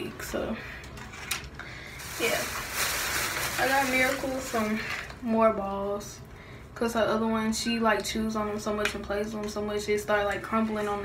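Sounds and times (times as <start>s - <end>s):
packaging rustling and crinkling: 1.1s - 5.2s.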